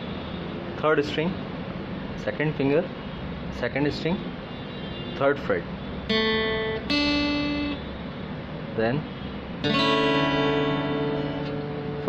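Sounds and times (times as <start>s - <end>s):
acoustic guitar chord strummed: 6.1s - 7.8s, 9.6s - 12.0s.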